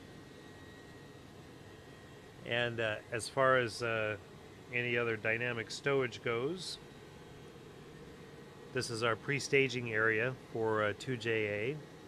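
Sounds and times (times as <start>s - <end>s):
ventilation fans hissing: 0.0s - 12.0s
thin high whine: 2.0s - 11.9s.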